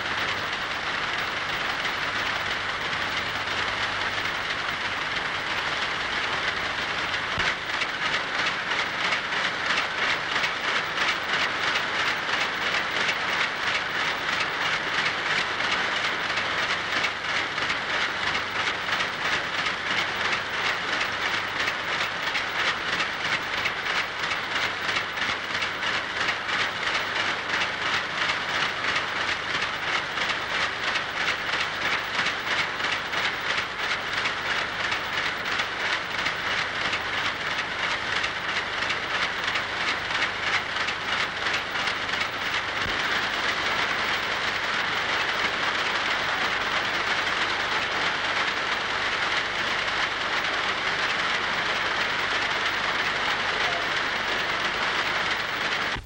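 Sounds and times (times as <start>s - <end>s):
looms clattering rhythmically: 0.0s - 56.0s.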